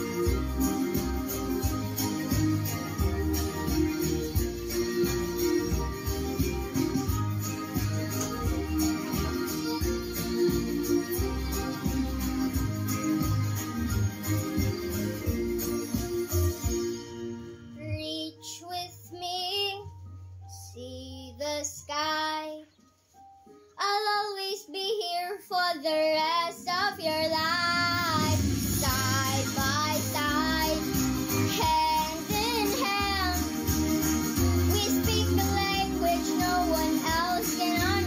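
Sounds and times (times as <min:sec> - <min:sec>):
instrumental accompaniment: 0:00.0 - 0:17.9, 0:27.4 - 0:38.0
girl singing: 0:17.8 - 0:22.7, 0:23.8 - 0:38.0.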